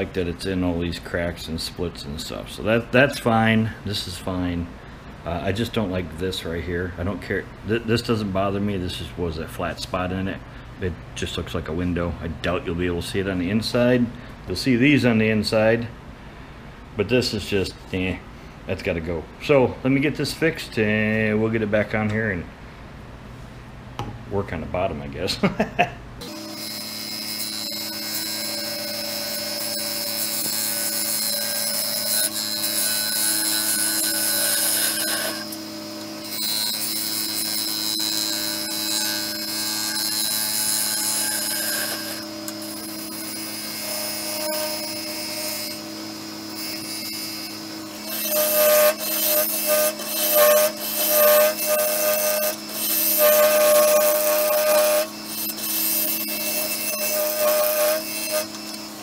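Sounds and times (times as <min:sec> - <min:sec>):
wood lathe humming: 0:26.2 - 0:59.0.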